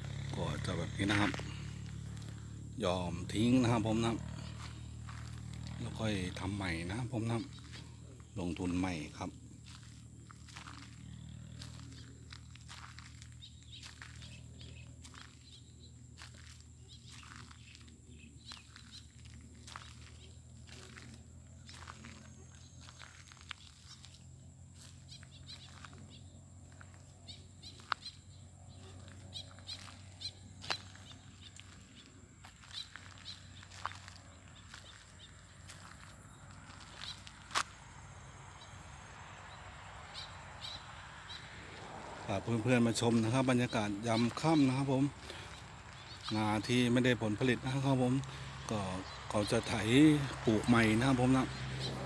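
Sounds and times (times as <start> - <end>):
footsteps on dry clods: 0.1 - 38.3, 41.8 - 52.0
high insect drone: 4.2 - 42.3.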